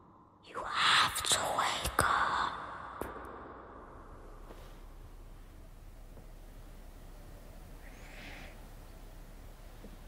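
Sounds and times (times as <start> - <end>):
person whispering loudly: 0.4 - 3.2.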